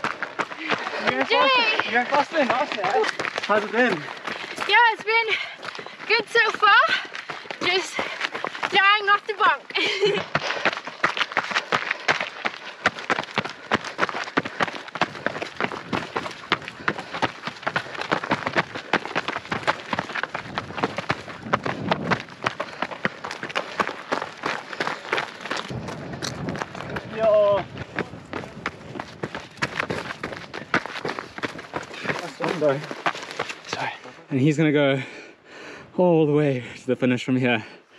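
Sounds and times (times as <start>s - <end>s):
running footsteps on gravel: 0.0s - 35.2s.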